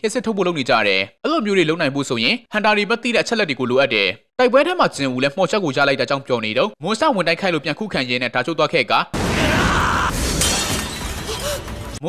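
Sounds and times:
sharp crash: 9.2s - 12.0s.

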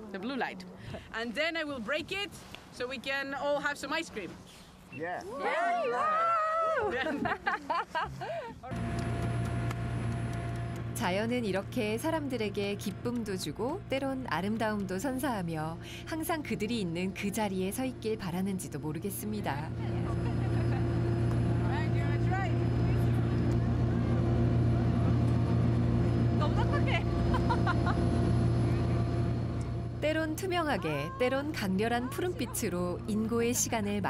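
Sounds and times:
boat engine hum: 8.0s - 34.0s.

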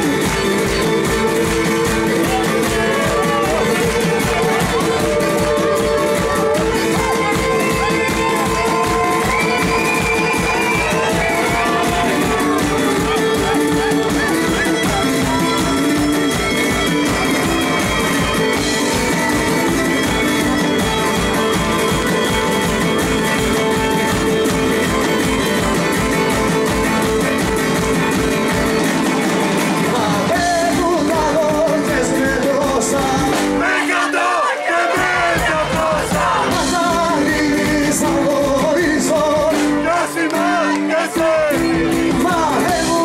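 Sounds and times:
folk-rock band playing: 0.0s - 43.0s
steady drum beat: 0.0s - 43.0s
man singing: 29.8s - 34.4s, 35.2s - 43.0s.

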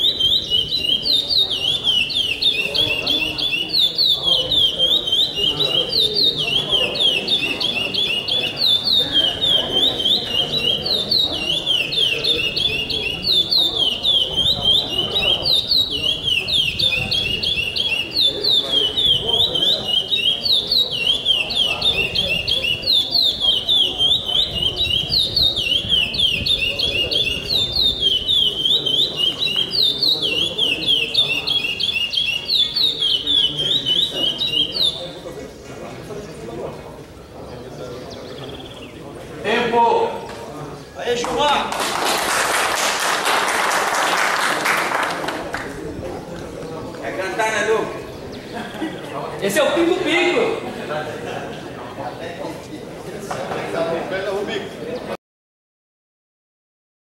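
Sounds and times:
songbird singing: 0.0s - 41.7s, 45.5s - 55.2s.

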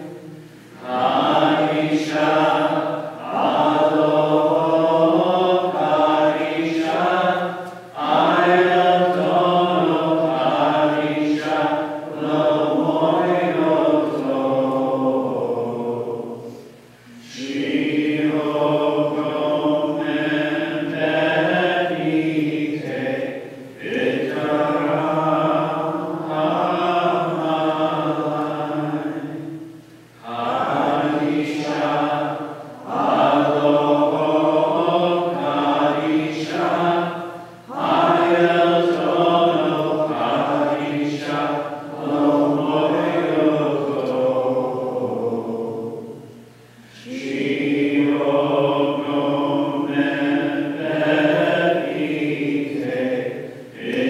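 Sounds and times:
liturgical chant: 0.0s - 54.0s.

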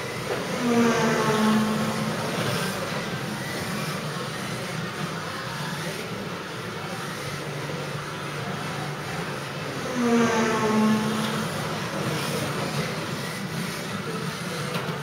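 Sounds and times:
toy car electric motor whine: 0.0s - 15.0s.

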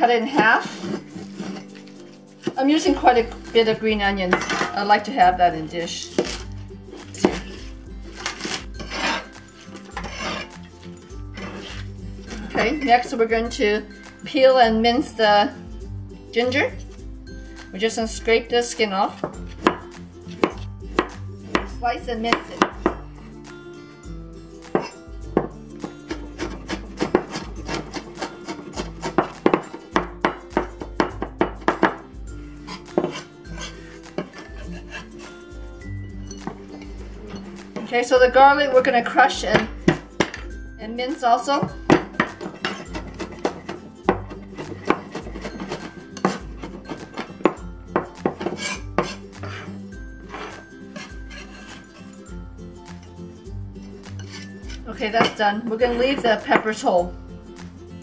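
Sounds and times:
soft background music: 0.0s - 58.0s
rasping scrapes on cutting board: 0.4s - 2.0s, 7.1s - 10.6s, 26.1s - 29.4s, 32.6s - 35.4s, 48.2s - 52.2s, 54.1s - 54.8s
knife chopping on wooden board: 6.0s - 9.2s, 19.2s - 23.0s, 24.7s - 32.0s, 32.7s - 35.2s, 41.6s - 49.7s.

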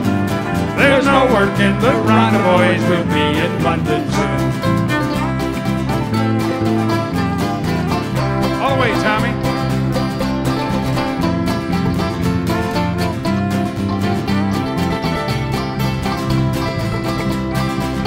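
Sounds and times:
fiddle: 0.0s - 18.0s
mandolin: 0.0s - 18.0s
strummed acoustic guitar: 0.0s - 18.0s.

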